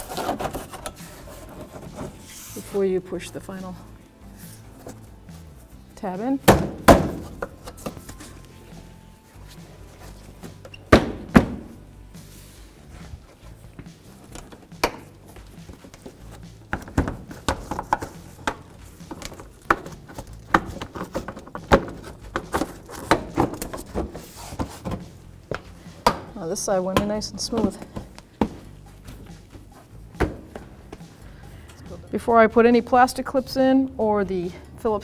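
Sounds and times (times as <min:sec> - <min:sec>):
background music: 0:00.0 - 0:35.0
plastic bumper cover knocking: 0:06.5 - 0:07.5.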